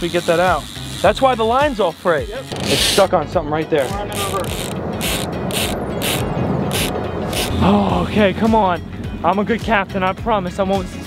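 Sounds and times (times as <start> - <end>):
fishing reel cranking: 0.0 - 3.1, 3.8 - 7.6.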